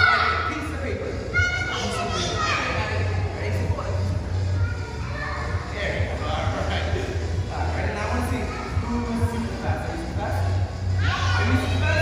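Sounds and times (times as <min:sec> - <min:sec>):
young children's voices: 0:00.0 - 0:00.5, 0:01.2 - 0:03.3, 0:04.4 - 0:06.1, 0:08.3 - 0:09.6, 0:11.0 - 0:12.0
steady low hum: 0:00.0 - 0:12.0.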